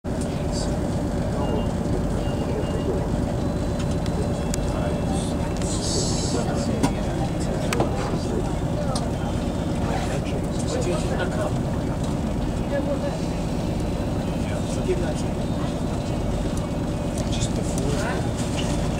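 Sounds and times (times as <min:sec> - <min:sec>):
train diesel engine droning: 0:00.1 - 0:18.9.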